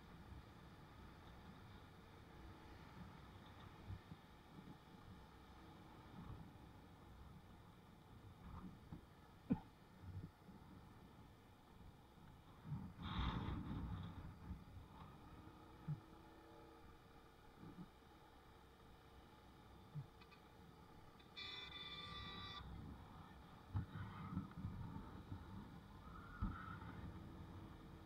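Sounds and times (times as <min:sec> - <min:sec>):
high-pitched tone: 0:21.4 - 0:22.7.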